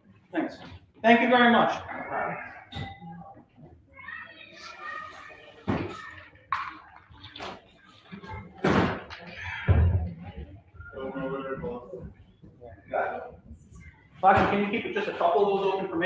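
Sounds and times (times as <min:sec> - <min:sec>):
faint voices murmuring: 0:01.8 - 0:16.0.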